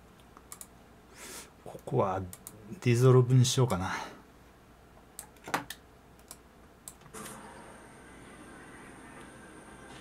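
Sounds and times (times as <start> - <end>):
steady background hiss: 0.0 - 10.0
computer keyboard keystrokes: 0.4 - 0.7, 5.2 - 7.1.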